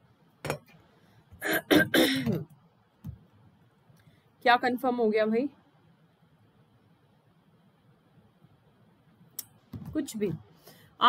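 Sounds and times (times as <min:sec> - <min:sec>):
woman clearing her throat: 0:01.4 - 0:02.5.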